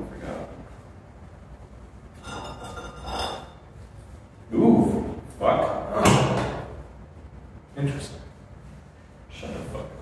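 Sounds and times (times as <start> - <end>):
low room noise: 0.0 - 10.0.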